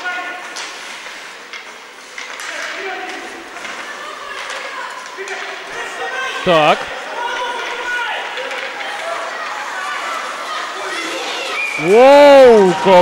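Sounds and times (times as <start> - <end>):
hockey sticks and puck clacking: 0.0 - 13.0
skates scraping ice: 0.0 - 13.0
steady rink hum: 0.0 - 13.0
players shouting: 2.6 - 13.0.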